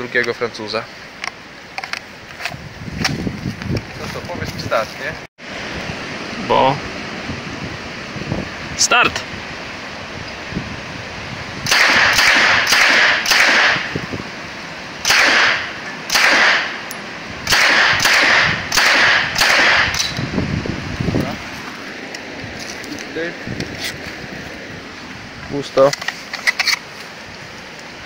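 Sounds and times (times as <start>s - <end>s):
gunshot echo: 11.7s - 13.9s, 15.0s - 16.8s, 17.5s - 20.2s
submachine gun single shots: 11.7s - 13.9s, 15.0s - 16.8s, 17.5s - 20.2s.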